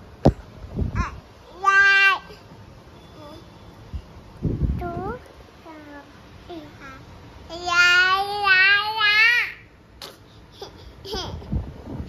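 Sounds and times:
toddler wordless calls: 0:01.0 - 0:02.5.

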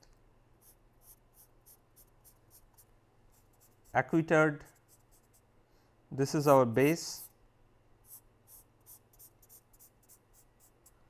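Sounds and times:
pen scratching on paper: 0:00.6 - 0:03.9, 0:04.7 - 0:05.4, 0:08.0 - 0:10.8.

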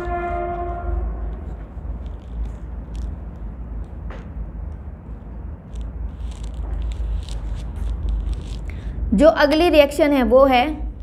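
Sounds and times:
horn sounding: 0:00.0 - 0:01.5
low steady rumble: 0:00.0 - 0:11.0.

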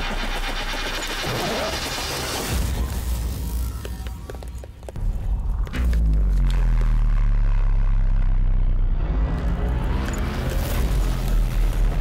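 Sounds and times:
loud deep drone: 0:05.2 - 0:12.0.

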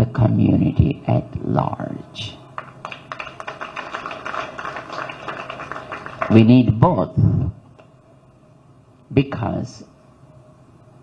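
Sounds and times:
audience applauding: 0:02.6 - 0:06.6.

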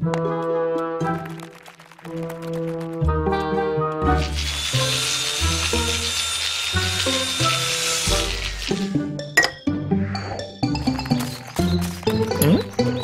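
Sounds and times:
bouncy cartoon music: 0:06.7 - 0:13.0.

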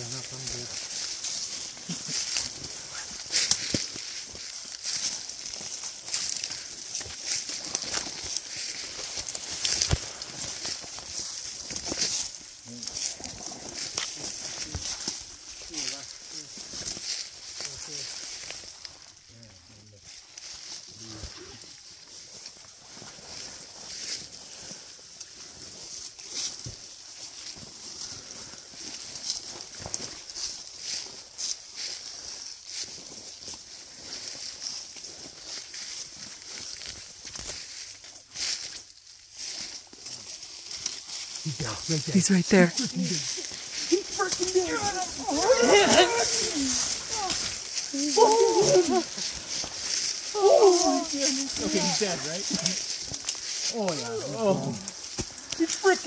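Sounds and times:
footsteps through leaves: 0:00.0 - 0:56.0
twigs snapping: 0:03.2 - 0:04.3, 0:05.5 - 0:12.4, 0:43.2 - 0:51.8, 0:52.4 - 0:54.1, 0:54.8 - 0:56.0.

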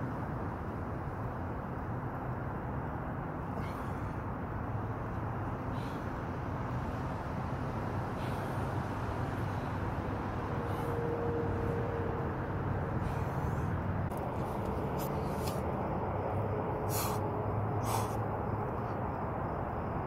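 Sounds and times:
low background rumble: 0:00.0 - 0:20.0
short hissing sounds: 0:16.8 - 0:18.2.

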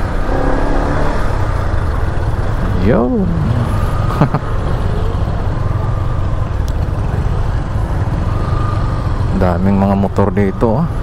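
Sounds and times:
motorcycle engine low rumble: 0:00.0 - 0:11.0.

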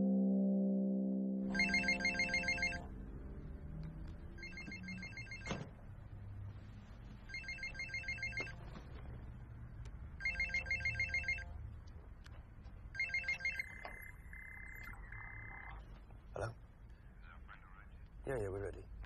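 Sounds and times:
phone ringing with electronic trill: 0:01.5 - 0:02.9, 0:04.4 - 0:05.7, 0:07.3 - 0:08.6, 0:10.2 - 0:11.6, 0:13.0 - 0:15.8.

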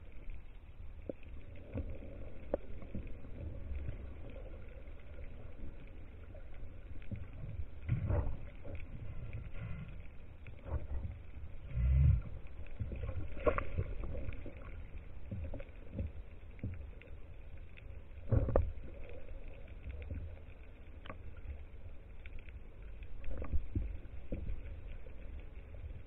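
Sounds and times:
low underwater rumble: 0:00.0 - 0:26.0
underwater clicks and knocks: 0:06.9 - 0:16.9, 0:18.2 - 0:19.2.

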